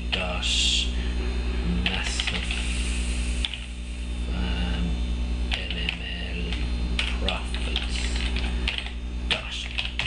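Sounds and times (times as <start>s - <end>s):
steady low hum: 0.0s - 10.0s
keyboard keystrokes clicking: 5.5s - 9.0s, 9.6s - 10.0s.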